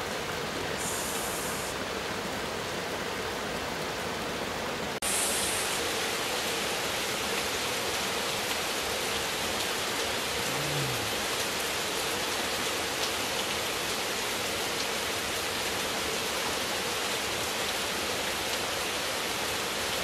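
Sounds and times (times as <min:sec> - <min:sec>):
steady rain falling: 0:00.0 - 0:20.0.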